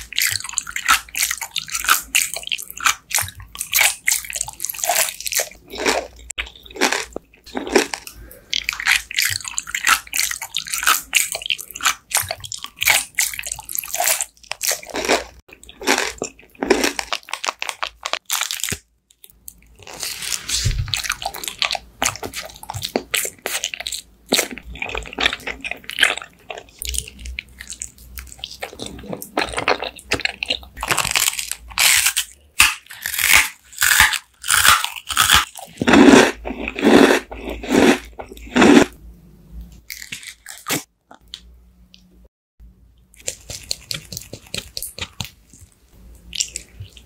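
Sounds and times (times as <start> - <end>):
biting and chewing: 0.0 - 39.0, 43.2 - 47.0
wet crackly mouth sounds: 0.0 - 39.0, 43.1 - 47.0.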